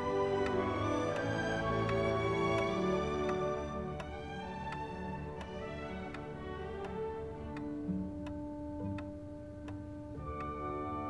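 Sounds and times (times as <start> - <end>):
clock ticking: 0.0 - 11.0
soft string music: 0.0 - 11.0.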